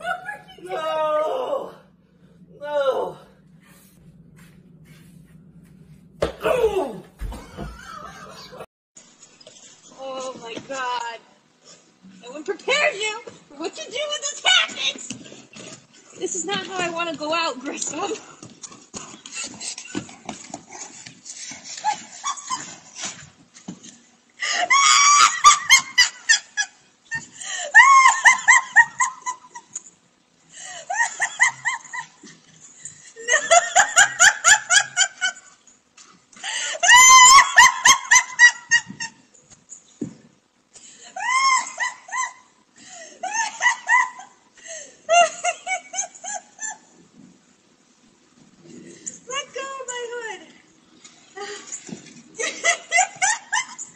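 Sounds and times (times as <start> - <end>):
person shrieking with laughter: 0.0 - 1.8, 2.6 - 3.3, 6.3 - 8.6, 24.4 - 25.8, 27.5 - 28.6, 36.7 - 38.2, 41.2 - 42.4
thumps and scuffling: 3.6 - 8.6
high-pitched pulsing laughter: 24.4 - 26.8, 27.5 - 29.7, 41.2 - 42.5.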